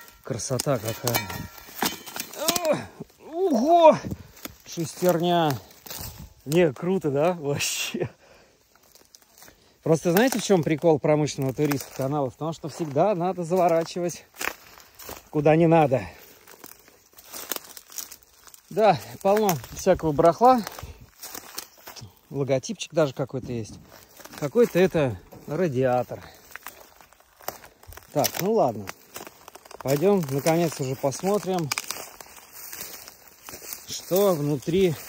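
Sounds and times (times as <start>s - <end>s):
footsteps through dry grass: 0.0s - 35.0s.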